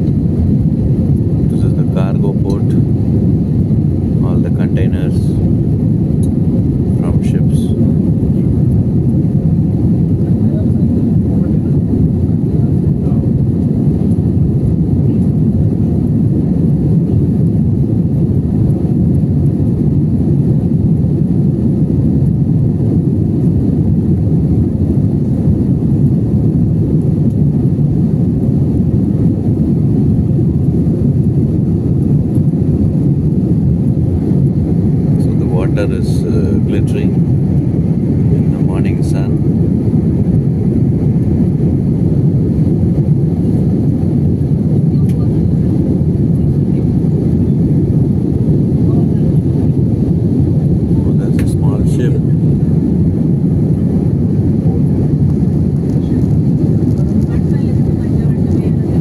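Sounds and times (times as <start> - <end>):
airliner cabin drone: 0.0 - 59.0.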